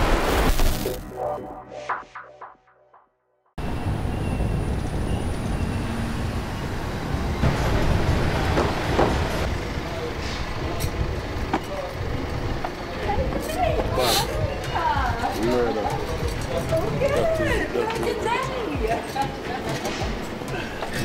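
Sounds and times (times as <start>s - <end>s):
traffic rumble: 3.6s - 21.0s.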